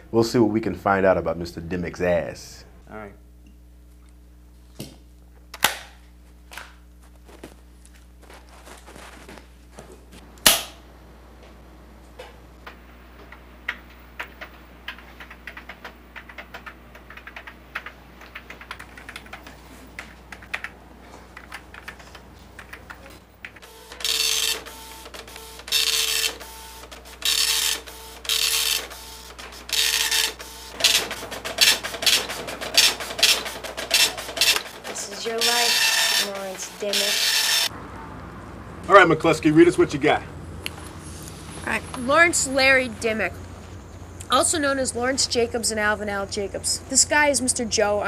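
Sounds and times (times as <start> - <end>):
keyboard typing: 13.6 - 37.1
dot-matrix printer printing: 23.6 - 37.7.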